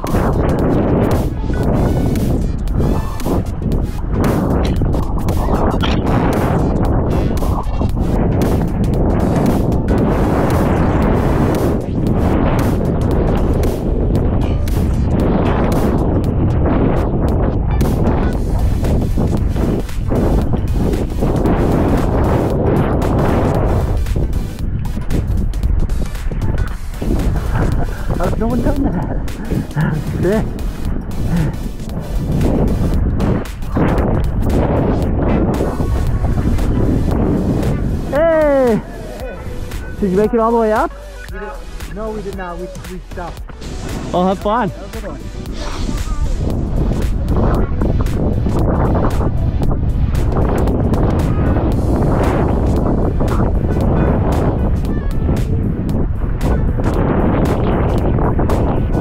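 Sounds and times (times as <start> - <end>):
wind on microphone: 0.0 - 59.0
snowboard carving through snow: 26.8 - 40.0, 45.0 - 54.8
background music with singing: 28.8 - 57.6.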